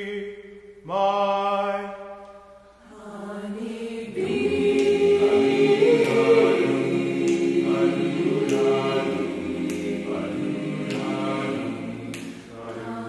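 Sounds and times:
choir singing a cappella: 0:02.7 - 0:13.0.

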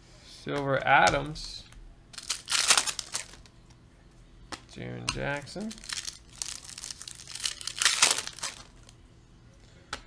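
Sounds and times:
cards rustling by hand: 0:02.2 - 0:03.5, 0:05.6 - 0:09.0.

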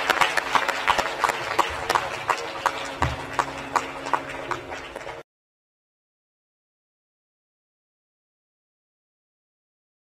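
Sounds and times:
audience clapping: 0:00.0 - 0:05.2.

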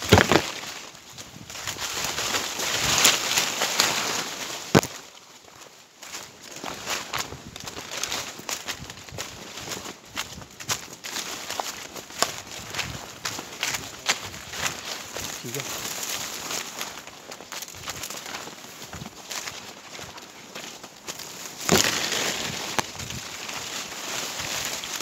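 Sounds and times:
footsteps in undergrowth: 0:00.0 - 0:25.0
leaves and branches rustling: 0:00.0 - 0:25.0.

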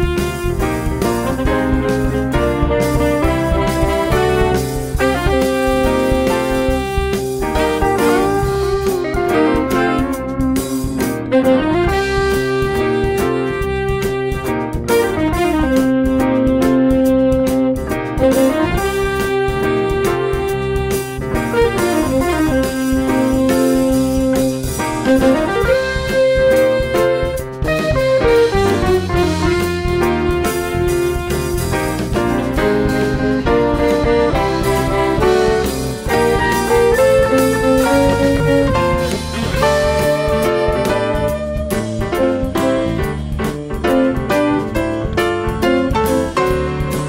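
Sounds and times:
electric guitar short notes: 0:00.0 - 0:47.0
jazz band playing blues shuffle: 0:00.0 - 0:47.0.

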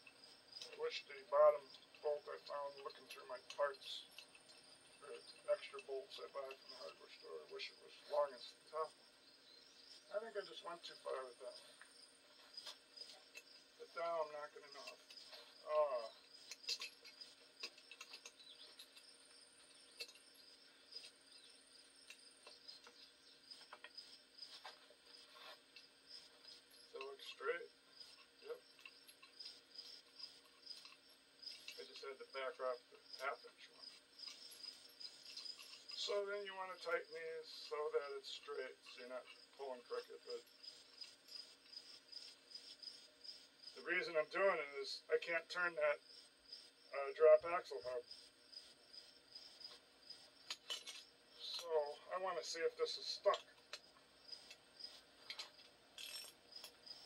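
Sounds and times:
crickets chirping: 0:00.0 - 0:57.0
high insect chorus: 0:00.0 - 0:57.0.

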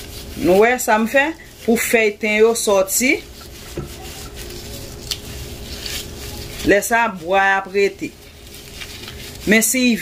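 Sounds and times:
faint steady hum: 0:00.0 - 0:10.0
rustling of dried herb sprigs: 0:00.0 - 0:10.0.

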